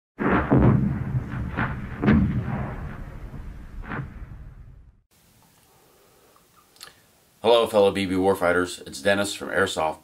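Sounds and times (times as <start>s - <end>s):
gunfire booms with low rumble: 0.2s - 5.0s.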